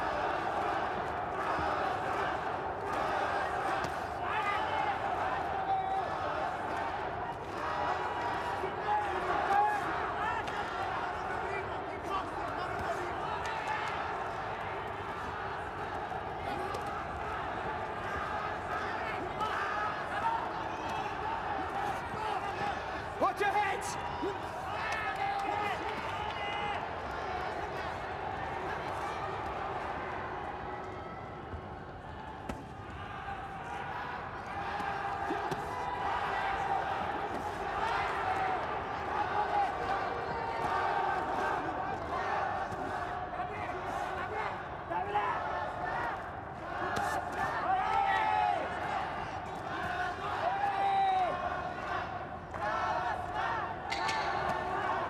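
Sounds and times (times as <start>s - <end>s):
crowd shouts: 0.0s - 55.0s.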